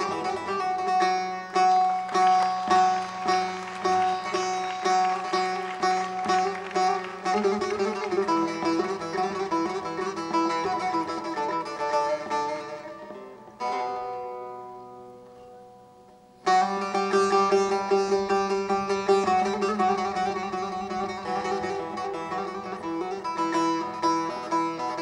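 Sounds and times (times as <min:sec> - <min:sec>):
long-necked lute played solo: 0:00.0 - 0:25.0.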